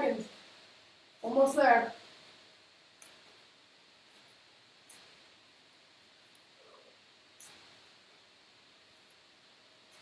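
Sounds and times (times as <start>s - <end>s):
faint clicks: 3.0s - 3.4s, 4.2s - 5.2s, 7.4s - 7.8s.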